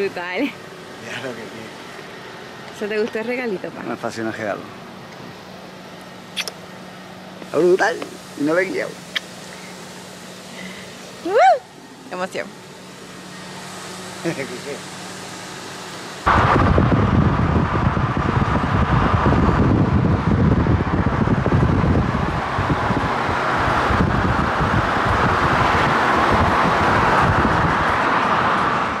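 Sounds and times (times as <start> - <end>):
car and road noise: 0.0 - 29.0
wind buffeting microphone: 16.3 - 29.0.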